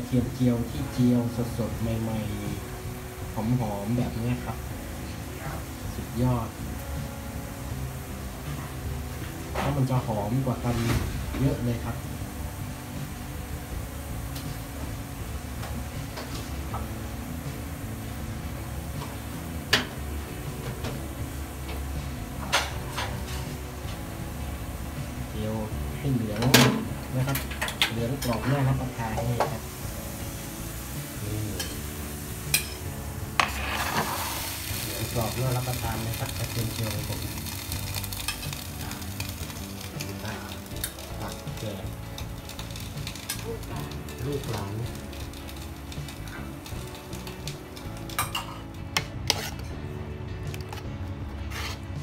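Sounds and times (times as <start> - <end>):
garlic frying in oil: 0.0 - 49.9
quiet background music: 0.0 - 52.0
spatula stirring in pan: 29.4 - 49.8, 51.5 - 51.9
loud scrape: 33.4 - 34.7, 49.3 - 49.7, 51.5 - 51.9.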